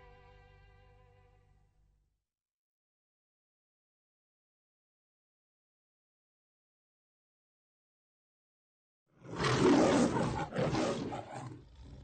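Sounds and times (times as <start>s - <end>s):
lion roaring: 9.2s - 12.0s.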